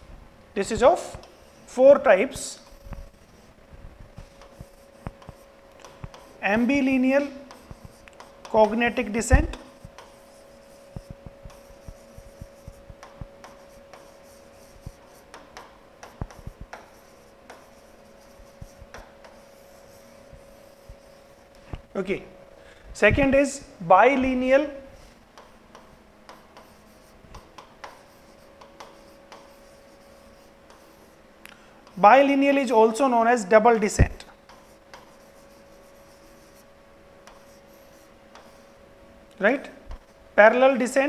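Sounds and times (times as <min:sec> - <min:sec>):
faint steady hum: 0:00.0 - 0:41.0
marker pen writing on a board: 0:01.0 - 0:01.8, 0:02.5 - 0:21.6, 0:25.0 - 0:31.2, 0:34.0 - 0:38.8.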